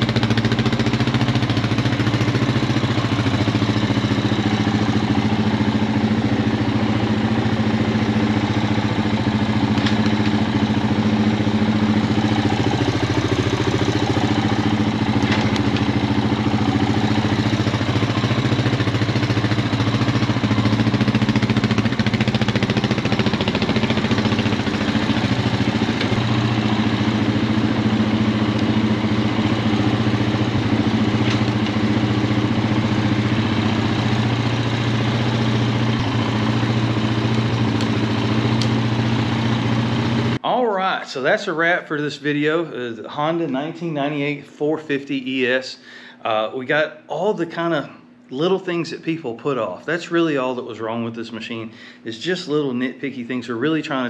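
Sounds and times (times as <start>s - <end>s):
atv engine idling: 0.0s - 40.6s.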